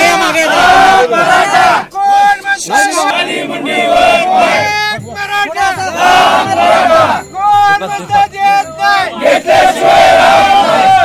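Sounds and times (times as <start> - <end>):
crowd of men shouting: 0.0 - 11.0.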